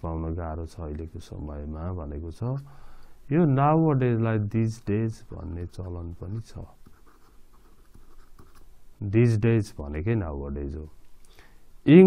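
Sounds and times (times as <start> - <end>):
stylus scratching on pen tablet: 5.5 - 8.7.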